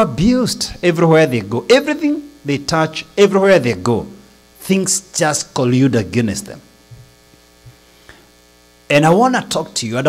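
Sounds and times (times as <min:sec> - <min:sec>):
man speaking: 0:00.0 - 0:06.7, 0:08.9 - 0:10.0
electrical mains hum: 0:00.0 - 0:10.0.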